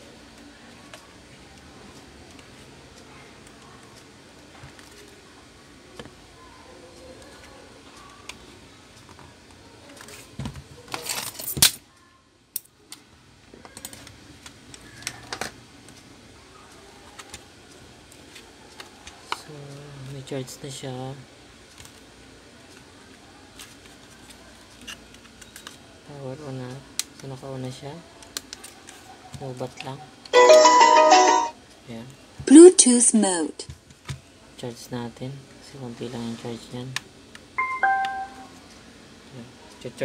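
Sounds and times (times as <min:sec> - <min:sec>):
speaker power-on jingle: 0:30.4 - 0:31.5, 0:37.6 - 0:38.5.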